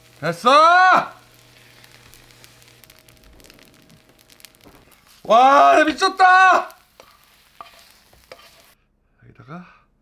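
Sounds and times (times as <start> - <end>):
rice sizzling in frying pan: 0.0 - 8.8
wooden spatula stirring: 1.3 - 8.8.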